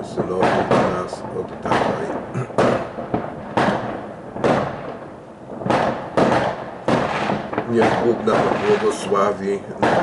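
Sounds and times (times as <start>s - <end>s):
fireworks bangs with echo: 0.0s - 10.0s.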